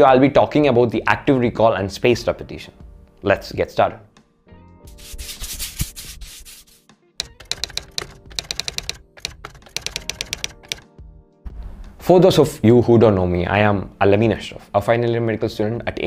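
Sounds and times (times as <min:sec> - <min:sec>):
typewriter-like clicks: 0:07.2 - 0:10.9.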